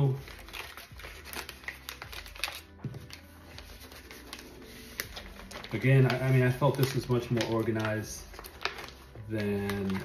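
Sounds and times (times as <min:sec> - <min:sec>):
paper rustling into plastic sleeve: 0:00.0 - 0:10.0.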